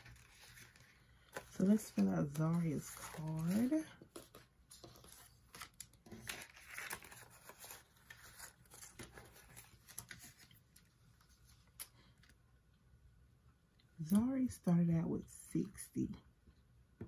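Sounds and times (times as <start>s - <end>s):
paper banknotes rustling: 0.0s - 11.9s.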